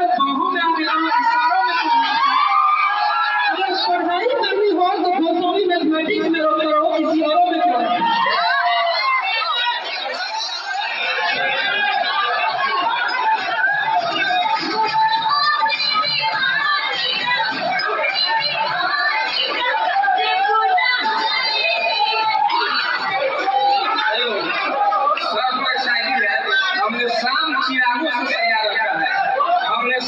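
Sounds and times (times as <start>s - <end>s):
music with singing: 0.0s - 30.0s
people talking at once: 0.0s - 30.0s.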